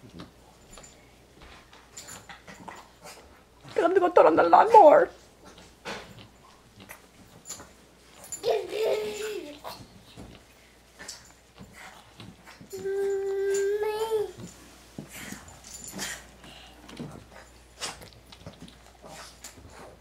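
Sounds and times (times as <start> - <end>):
toddler babbling: 8.4 - 9.7, 12.7 - 14.4
toddler holding long aah: 12.7 - 14.4.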